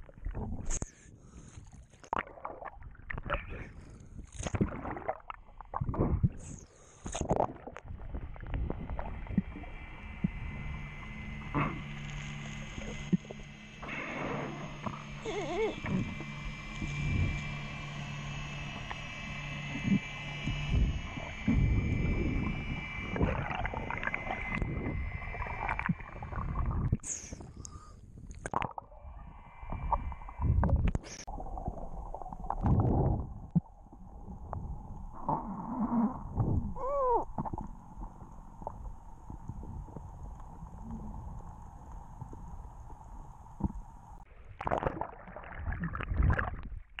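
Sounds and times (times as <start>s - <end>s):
water rushing underwater: 4.5s - 27.1s, 28.4s - 47.0s
faint high whine: 8.0s - 28.0s, 28.8s - 44.2s.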